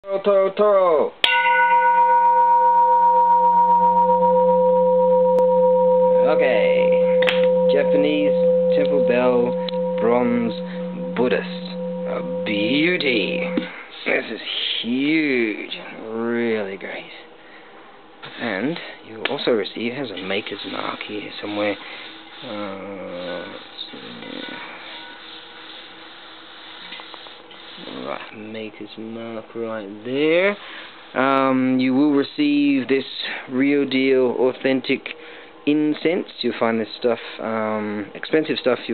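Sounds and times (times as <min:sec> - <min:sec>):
temple bell ringing: 0:01.2 - 0:13.7
background hiss: 0:03.1 - 0:38.9.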